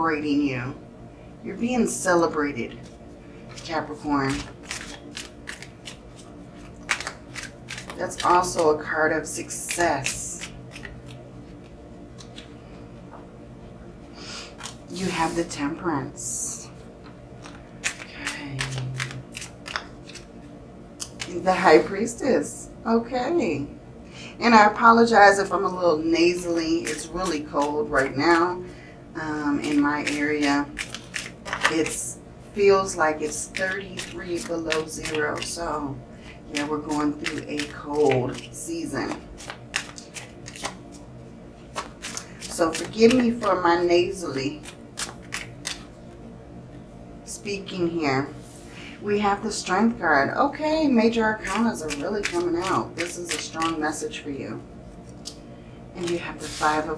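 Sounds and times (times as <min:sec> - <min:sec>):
cards snapping and flicking: 0:04.3 - 0:08.6, 0:09.6 - 0:11.2, 0:12.2 - 0:12.5, 0:17.4 - 0:20.3, 0:21.0 - 0:21.3, 0:29.6 - 0:32.0, 0:36.6 - 0:41.0, 0:41.7 - 0:43.6, 0:44.6 - 0:45.9, 0:51.5 - 0:53.8.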